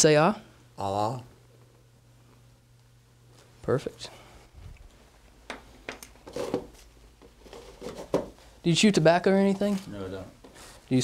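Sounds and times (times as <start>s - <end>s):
gloves rustling: 4.6s - 11.0s.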